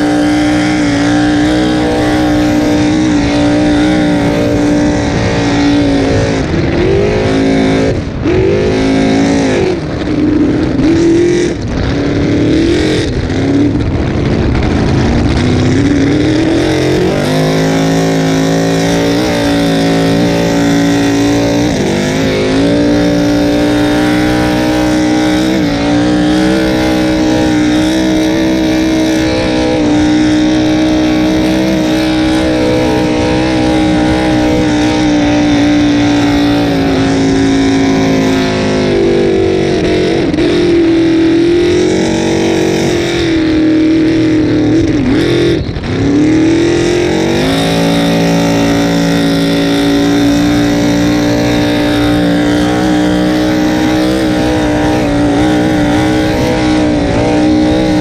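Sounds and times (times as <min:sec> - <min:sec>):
racing boat engine running hard: 0:00.0 - 0:58.0.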